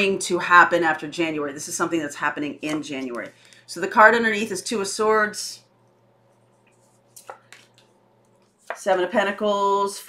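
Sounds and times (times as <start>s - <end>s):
cards slapping on wooden table: 7.2s - 7.9s.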